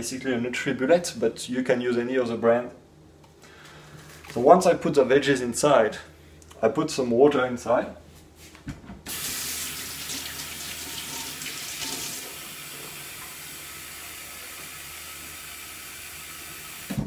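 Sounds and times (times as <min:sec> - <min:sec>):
tap running water: 0:09.1 - 0:17.0.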